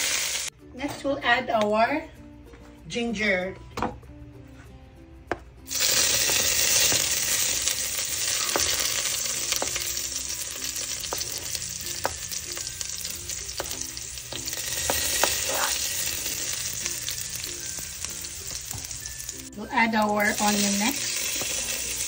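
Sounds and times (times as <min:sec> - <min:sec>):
ginger sizzling in hot oil: 0:00.0 - 0:00.5, 0:05.7 - 0:22.0.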